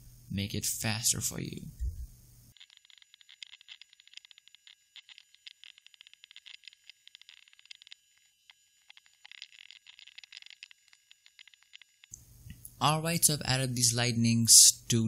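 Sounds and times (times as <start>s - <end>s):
mouse and keyboard clicks: 2.6s - 8.0s.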